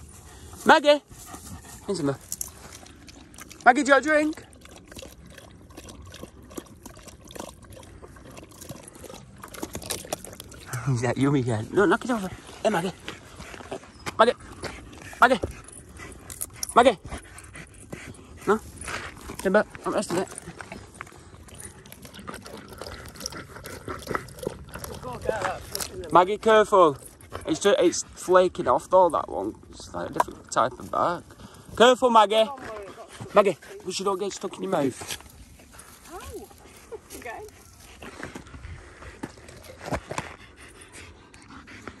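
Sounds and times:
dog lapping water: 1.3 - 41.8.

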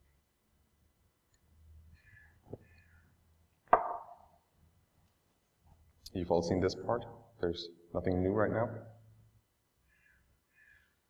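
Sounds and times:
sharp ringing knock: 3.8 - 4.2.

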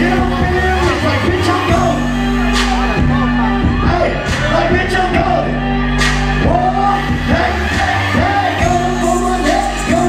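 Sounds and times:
hip-hop backing track with bass: 0.0 - 10.0
person rapping into a microphone: 0.0 - 10.0.

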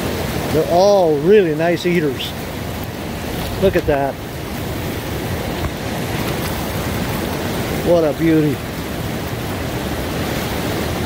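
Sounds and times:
river water rushing through rapids: 0.0 - 11.0.

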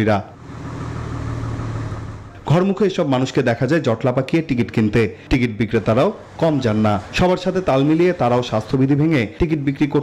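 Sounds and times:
bus engine idling: 0.0 - 3.4.

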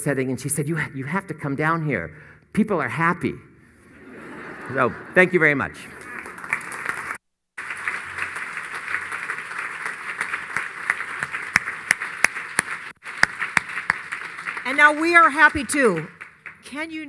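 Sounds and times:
audience clapping: 5.2 - 17.0
sharp individual claps: 6.0 - 16.7.

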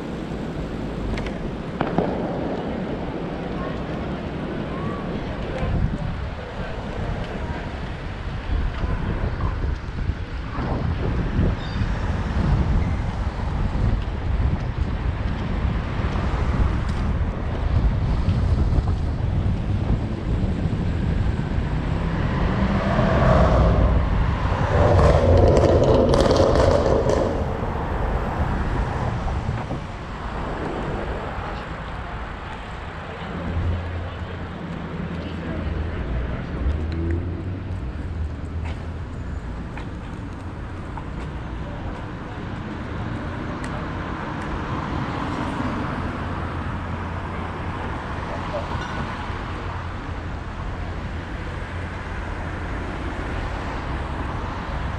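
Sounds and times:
city street traffic: 0.0 - 54.9
wind noise on microphone: 0.0 - 54.9.

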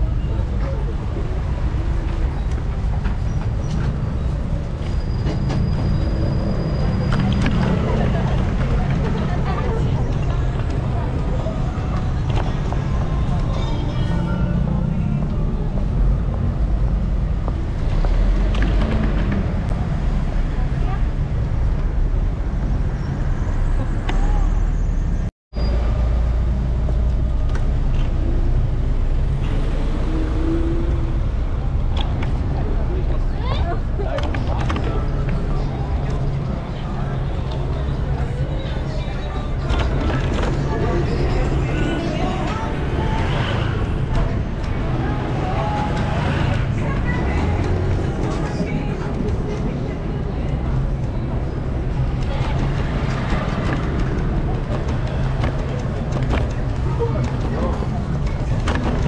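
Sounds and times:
passers-by talking: 0.0 - 25.0, 26.8 - 59.0
passing cars and buses: 0.0 - 59.0.

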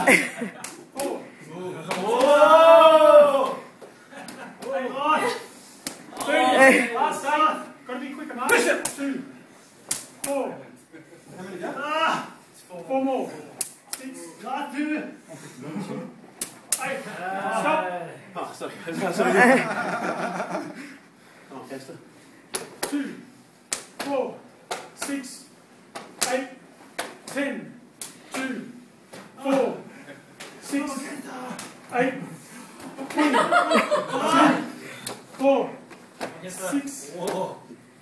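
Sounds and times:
people shouting: 1.9 - 3.7.

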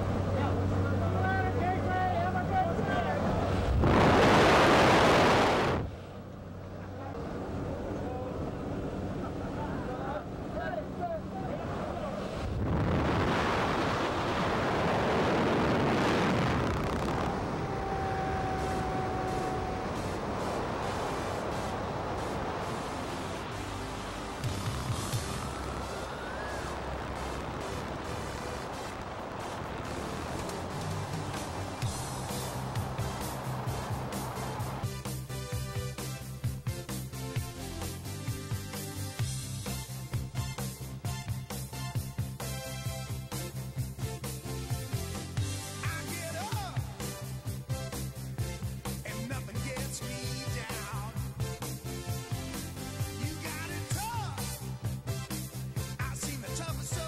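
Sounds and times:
rush of wind: 0.0 - 34.9
plane engine droning: 14.0 - 34.8.

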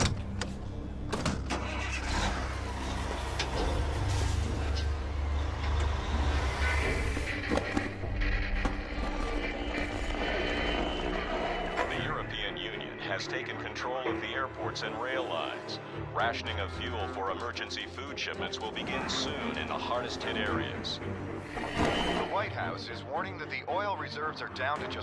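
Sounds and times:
diesel truck engine rumbling: 0.0 - 13.7
dramatic background music: 0.0 - 25.0.

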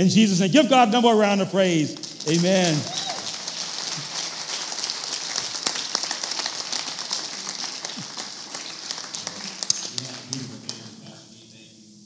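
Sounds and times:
crowd clapping: 1.7 - 11.3.

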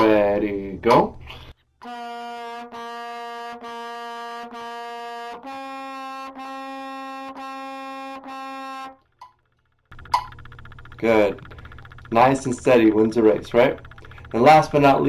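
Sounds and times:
trumpet notes: 1.8 - 9.1.

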